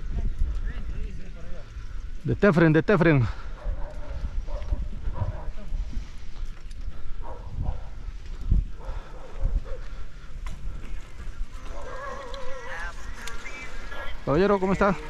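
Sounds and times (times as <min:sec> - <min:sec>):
wind buffeting microphone: 0:00.0 - 0:02.5, 0:03.2 - 0:15.0.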